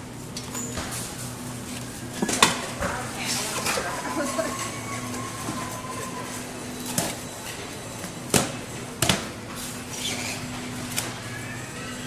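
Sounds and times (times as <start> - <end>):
shopping cart rolling: 0.4 - 12.0.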